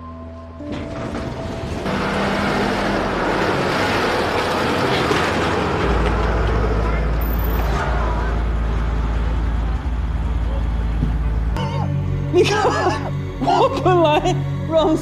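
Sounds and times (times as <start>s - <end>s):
street noise: 0.0s - 15.0s
motor vehicle running: 0.6s - 15.0s.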